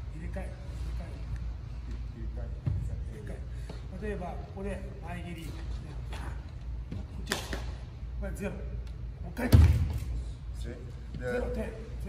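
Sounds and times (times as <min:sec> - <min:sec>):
soft movement sounds: 0:00.0 - 0:09.2.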